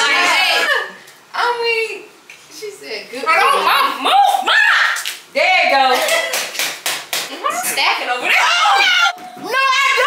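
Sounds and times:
women shouting and shrieking: 3.3 - 5.0, 8.2 - 10.0
hand claps: 5.9 - 7.4.

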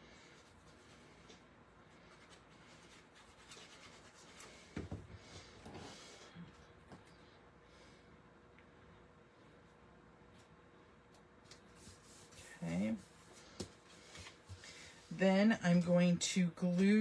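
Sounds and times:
paper rubbing and rustling: 2.0 - 4.7.

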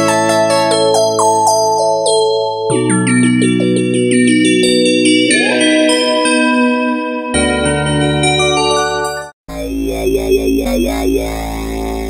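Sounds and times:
synthesizer bass drone: 9.5 - 12.0.

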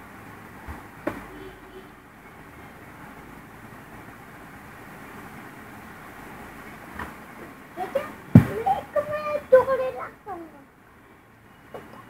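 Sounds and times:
low rumble and hiss: 0.0 - 12.0.

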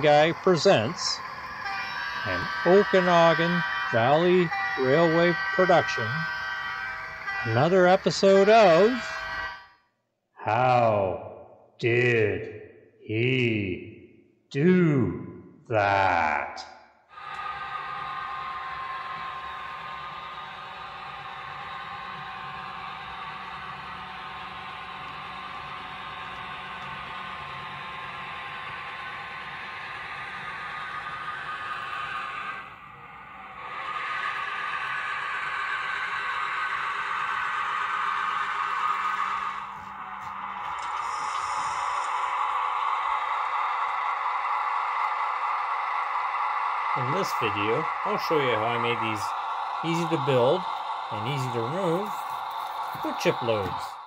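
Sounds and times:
model train running on track: 0.0 - 9.6, 17.2 - 54.0.

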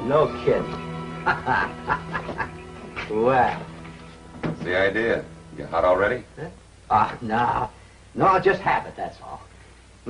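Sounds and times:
background music: 0.0 - 8.4
man laughing in short bursts: 1.3 - 2.6.

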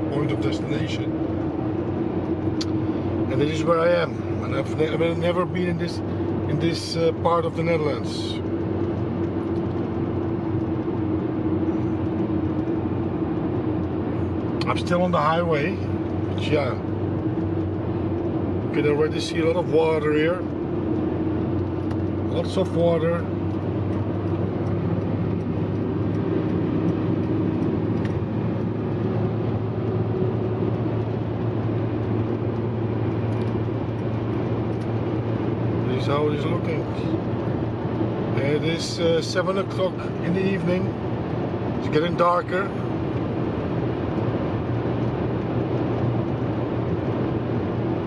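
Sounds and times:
car road and engine noise: 0.0 - 48.0.

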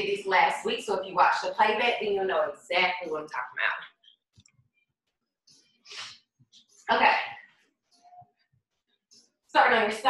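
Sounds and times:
woman speaking: 0.0 - 3.9, 6.9 - 7.4, 9.6 - 10.0.

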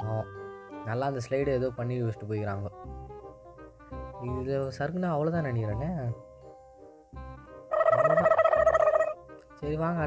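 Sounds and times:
background music: 0.0 - 10.0
fluttering pitched tone: 7.7 - 9.2.

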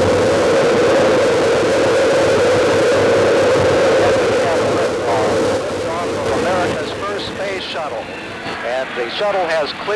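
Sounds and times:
rocket engines roaring: 0.0 - 9.9.

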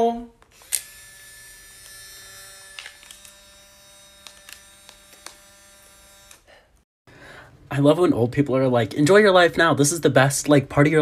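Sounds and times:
camera motor humming: 0.6 - 6.5
small camera clicks: 4.2 - 5.4.

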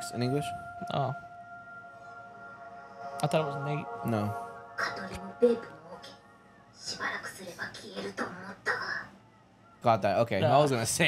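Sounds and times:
man talking: 0.0 - 1.2, 3.2 - 4.4, 9.8 - 11.0.

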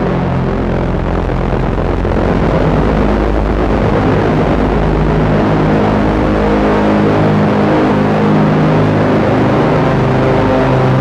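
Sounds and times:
dark synthesizer drone music: 0.0 - 11.0.

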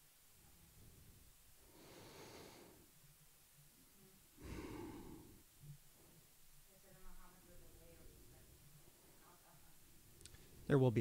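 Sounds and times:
soft breaths into microphone: 0.5 - 3.2, 4.3 - 7.0, 7.7 - 10.8.

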